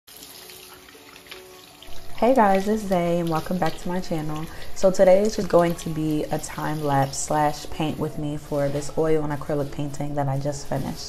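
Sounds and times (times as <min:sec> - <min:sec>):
faucet water running into sink: 0:00.1 - 0:11.0.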